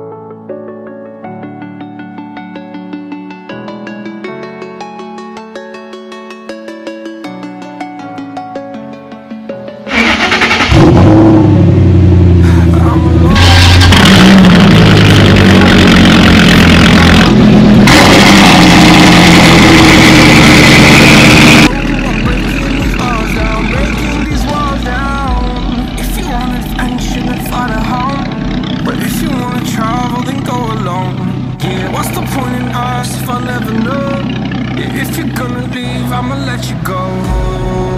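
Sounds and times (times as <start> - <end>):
loud car engine revving: 9.9 - 35.9
low engine sound: 9.9 - 37.9
rap music track: 21.7 - 37.9.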